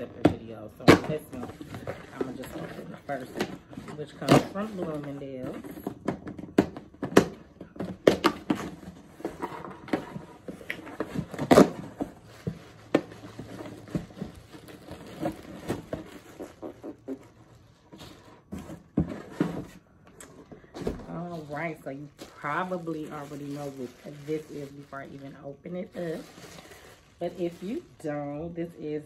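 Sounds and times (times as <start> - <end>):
cardboard box being opened: 0.0 - 27.9
packaging rustling and scraping: 0.0 - 29.0.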